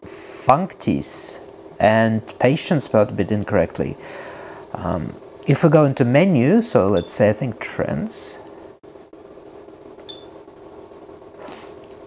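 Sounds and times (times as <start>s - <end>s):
cooling fan humming: 0.0s - 12.0s
high-pitched monitor beep: 10.1s - 10.4s.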